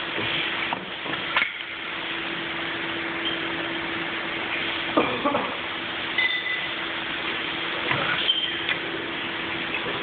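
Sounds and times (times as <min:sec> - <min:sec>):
hiss of running equipment: 0:00.0 - 0:10.0.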